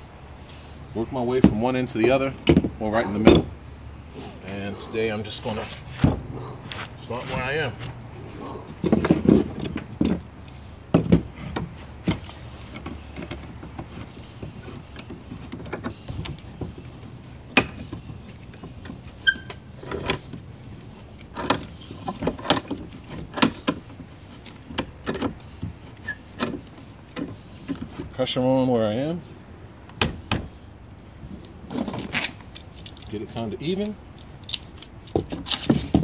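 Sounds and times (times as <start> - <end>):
clamp squeak: 19.2 - 20.0, 26.0 - 26.4.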